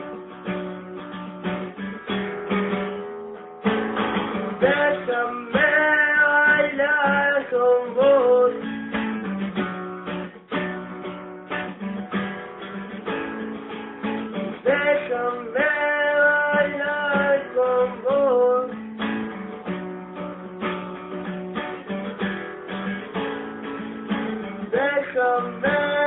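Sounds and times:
acoustic guitar strumming: 0:00.0 - 0:26.0.

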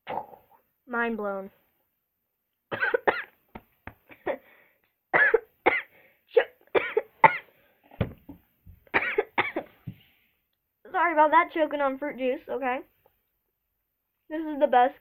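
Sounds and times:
girl coughing: 0:02.7 - 0:03.4, 0:04.1 - 0:04.5, 0:05.1 - 0:07.5, 0:08.9 - 0:09.7.

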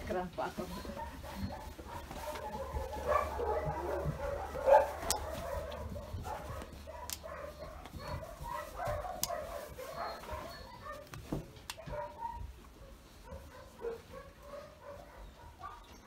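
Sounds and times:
puppy whining and yelping: 0:00.7 - 0:16.0.

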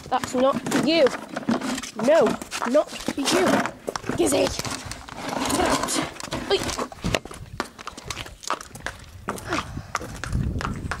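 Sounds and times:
hooves on brick paving: 0:00.0 - 0:11.0.

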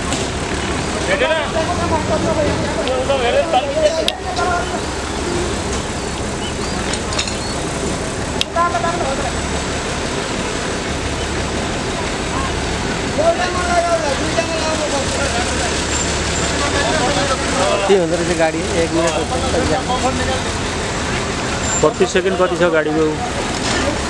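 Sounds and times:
people talking: 0:00.0 - 0:07.4, 0:08.3 - 0:24.0
heavy truck engine running: 0:00.0 - 0:24.0.

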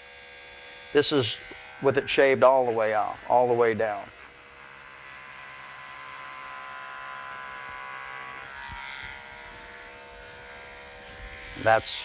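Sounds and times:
electric clipper buzzing: 0:00.0 - 0:12.0.

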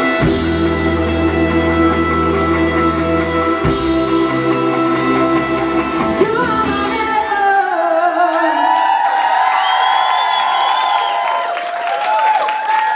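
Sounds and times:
rock band final chord: 0:00.0 - 0:07.3
crowd cheering and whooping: 0:07.9 - 0:12.9.

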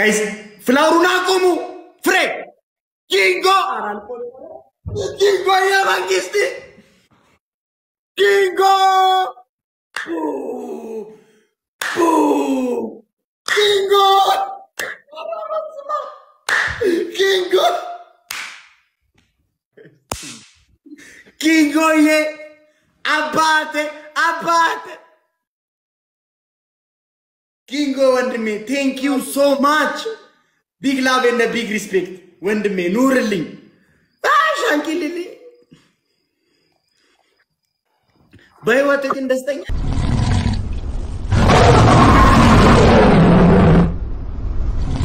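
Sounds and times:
sharp whip-like crack: 0:16.5 - 0:16.8, 0:18.3 - 0:18.8, 0:20.1 - 0:20.6
deep lion roar: 0:39.7 - 0:44.0.

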